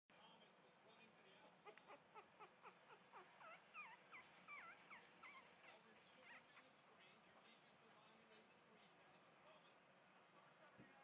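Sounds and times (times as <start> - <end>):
puppies whimpering: 1.6 - 6.8.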